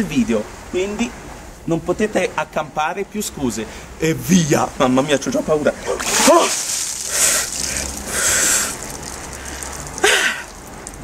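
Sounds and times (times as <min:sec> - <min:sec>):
water splattering: 0:05.1 - 0:11.0
man gasping sharp breaths: 0:07.1 - 0:08.8.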